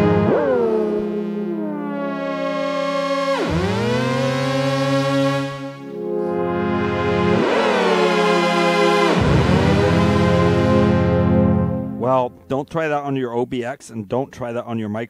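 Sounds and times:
synthesizer pad chord swooping in pitch: 0:00.0 - 0:12.6.

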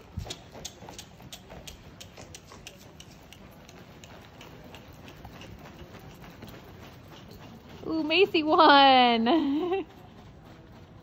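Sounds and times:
hoofbeats on dirt: 0:00.0 - 0:11.0.

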